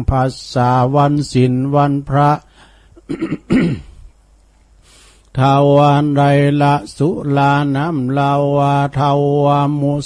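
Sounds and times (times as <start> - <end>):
man chanting verse: 0.0 - 2.5, 5.3 - 10.0
man coughing: 3.0 - 4.0.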